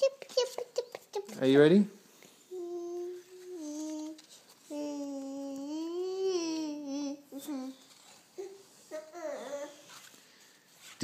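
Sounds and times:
person humming: 0:02.6 - 0:07.8.

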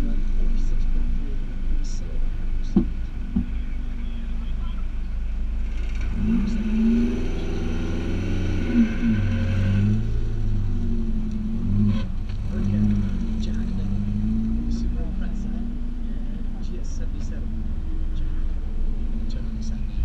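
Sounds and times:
car engine idling: 0:00.0 - 0:20.0
engine revving: 0:00.0 - 0:20.0.

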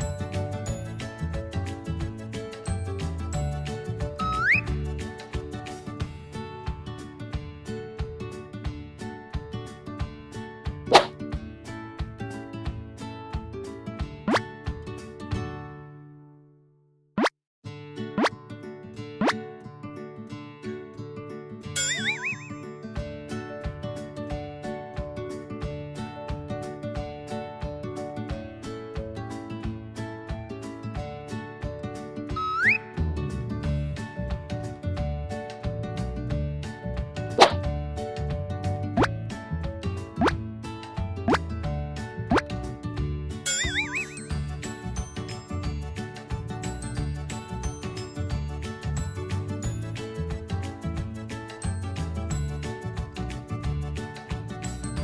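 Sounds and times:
children's background music: 0:00.0 - 0:15.6, 0:21.8 - 0:55.0
rising cartoon bloops: 0:04.2 - 0:04.7, 0:21.8 - 0:22.7, 0:32.4 - 0:32.8, 0:43.5 - 0:44.3
warbling whistle effect: 0:04.2 - 0:04.7, 0:21.8 - 0:22.8, 0:32.4 - 0:32.8, 0:43.5 - 0:44.3.

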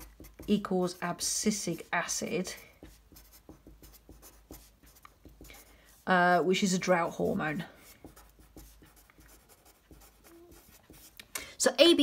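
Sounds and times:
felt-tip marker writing on paper: 0:00.0 - 0:06.1, 0:07.8 - 0:11.2.

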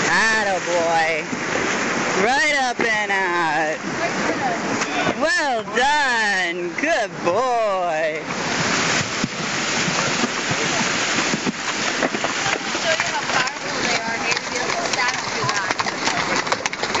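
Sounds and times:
water rushing and splashing: 0:00.0 - 0:17.0
hooves knocking on gravel: 0:08.2 - 0:17.0.

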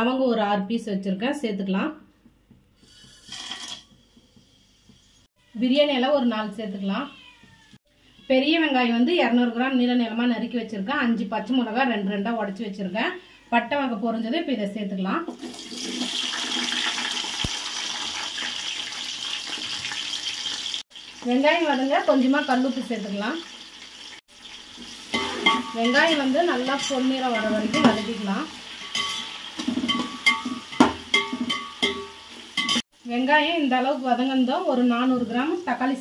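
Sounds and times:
onions sizzling in hot oil: 0:02.8 - 0:05.3, 0:15.3 - 0:36.0
spices scattering into metal pot: 0:24.8 - 0:32.8.

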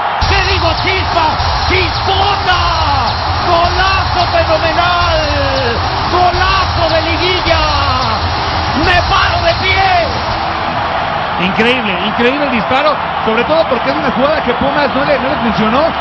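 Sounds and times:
stadium crowd cheering: 0:00.0 - 0:16.0.

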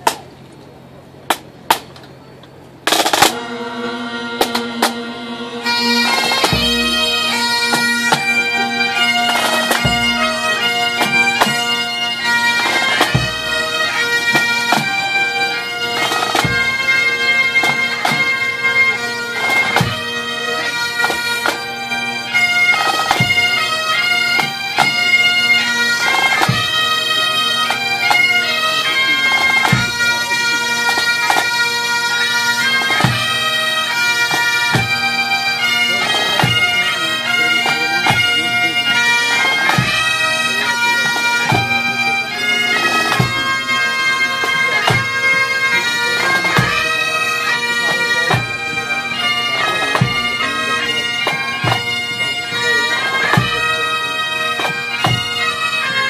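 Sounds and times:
bagpipes playing slow air: 0:02.8 - 0:56.0.

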